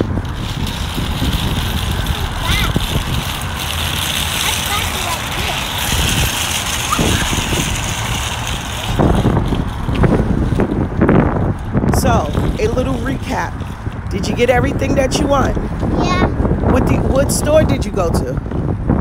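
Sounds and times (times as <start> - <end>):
toy cart wheels rattling on asphalt: 0.0 - 18.8.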